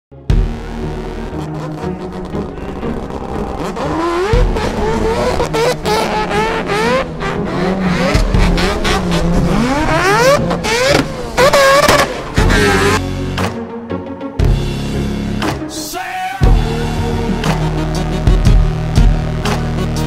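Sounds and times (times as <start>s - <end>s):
race car engine revving: 0.5s - 13.0s.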